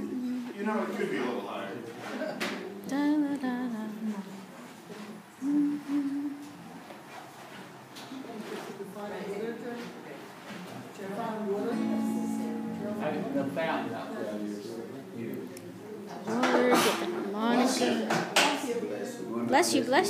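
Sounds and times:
acoustic guitar playing: 11.5s - 15.1s.

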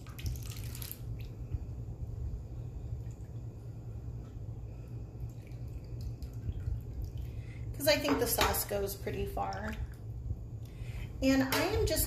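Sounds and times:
low steady hum: 0.0s - 12.0s
faint drips: 2.9s - 7.7s.

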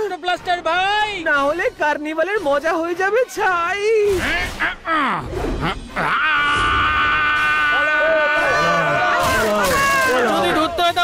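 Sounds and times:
cartoon monster high-pitched scream: 6.0s - 10.3s
lower cries from voices: 6.0s - 10.3s.

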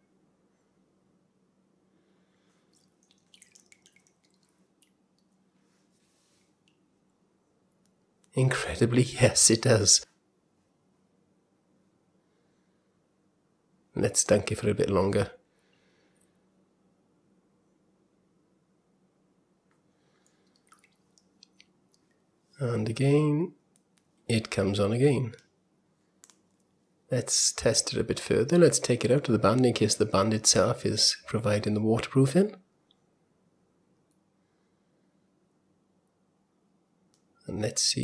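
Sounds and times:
low steady hum: 0.0s - 38.0s
water dripping into plastic bowl: 2.7s - 5.4s, 20.2s - 22.2s.

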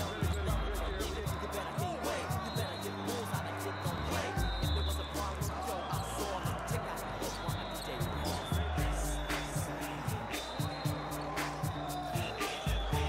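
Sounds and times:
hip-hop music: 0.0s - 13.0s.

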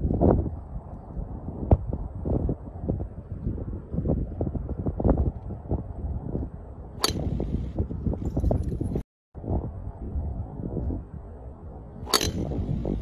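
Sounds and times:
wind buffeting microphone: 0.0s - 13.0s
golf club striking ball: 7.0s - 7.4s, 12.1s - 12.6s.

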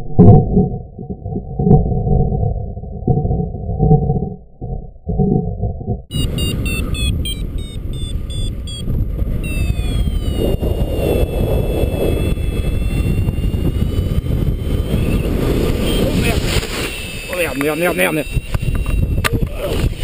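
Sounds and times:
wind rushing over microphone: 5.1s - 20.0s
variometer beeping: 6.1s - 20.0s.

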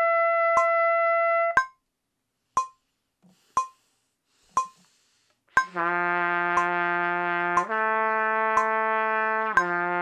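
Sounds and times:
metronome clicking: 0.5s - 0.8s, 1.6s - 1.8s, 2.6s - 2.8s, 3.6s - 3.8s, 4.5s - 4.8s, 5.6s - 5.9s, 6.5s - 10.0s
trumpet sustained low note: 5.7s - 10.0s.

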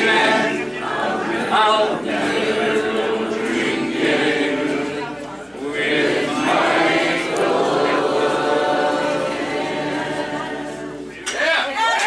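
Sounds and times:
group of voices singing: 0.0s - 11.3s.

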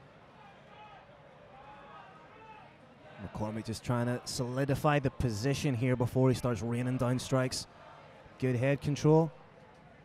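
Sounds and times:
low arena background noise: 0.0s - 10.0s.

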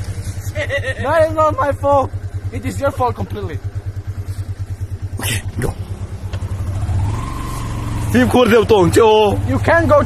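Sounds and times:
scooter engine revving: 0.0s - 10.0s.

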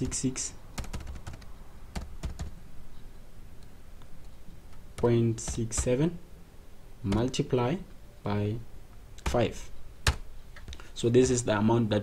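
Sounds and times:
computer keyboard keystrokes: 0.8s - 2.6s.

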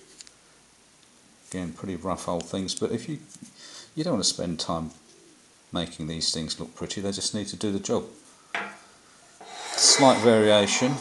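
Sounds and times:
metal knock on bench: 8.6s - 8.8s
metal parts rubbing: 9.4s - 11.0s.

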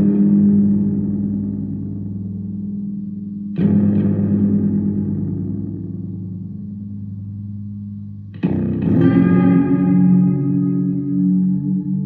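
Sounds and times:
electric guitar notes: 0.0s - 12.0s.

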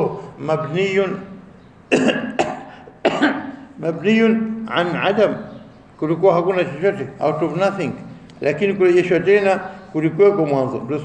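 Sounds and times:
man coughing: 1.9s - 3.7s.

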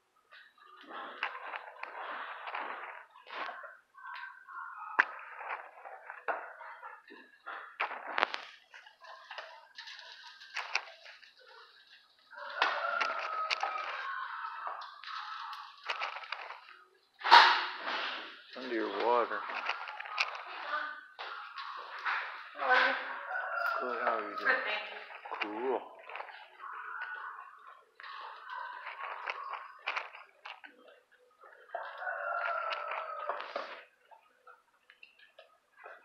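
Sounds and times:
indistinct voices: 0.0s - 36.0s.

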